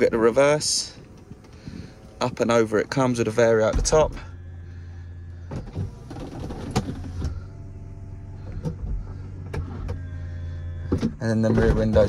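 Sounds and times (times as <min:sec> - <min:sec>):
hydraulic pump humming: 0:00.0 - 0:12.0.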